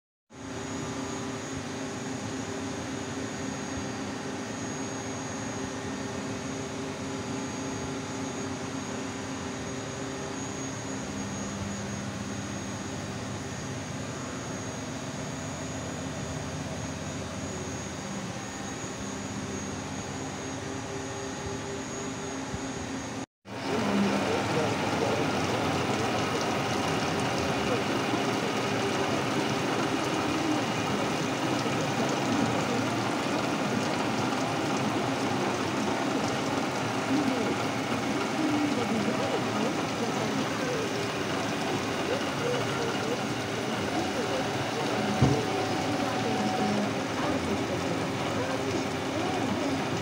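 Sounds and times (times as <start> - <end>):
milling machine humming and whining: 0.4 - 50.0.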